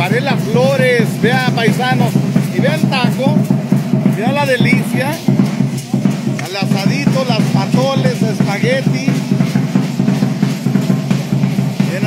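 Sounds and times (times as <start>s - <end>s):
bass drum and snare: 0.0s - 12.0s
music with steady drum beat: 0.0s - 12.0s.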